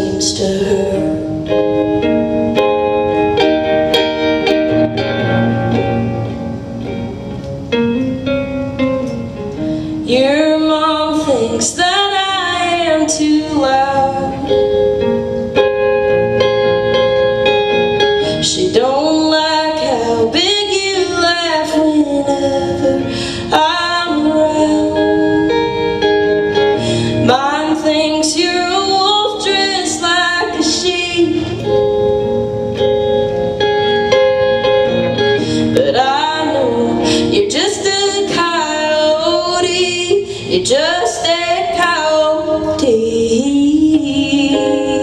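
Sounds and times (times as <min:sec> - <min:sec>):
woman singing: 0:00.0 - 0:01.9, 0:10.0 - 0:15.0, 0:18.3 - 0:31.9, 0:35.6 - 0:45.0
amplified electric guitar chords: 0:00.0 - 0:45.0.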